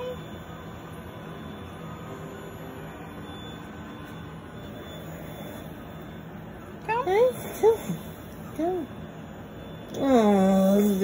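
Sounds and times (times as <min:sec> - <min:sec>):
electric fan humming: 0:00.0 - 0:11.0
faint held tones: 0:00.0 - 0:11.0.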